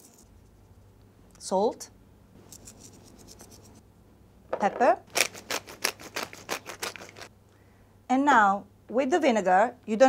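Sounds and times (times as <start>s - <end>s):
pepper grinder crunching clicks: 5.1s - 7.3s.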